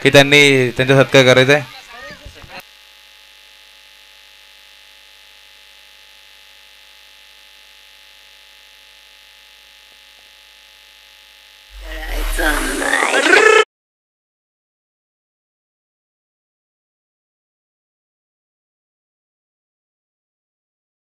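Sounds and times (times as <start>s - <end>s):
electrical hum and buzz: 2.6s - 13.6s.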